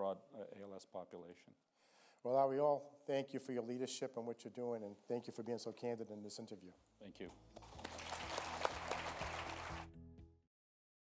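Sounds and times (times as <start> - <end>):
audience applauding: 7.5 - 10.0.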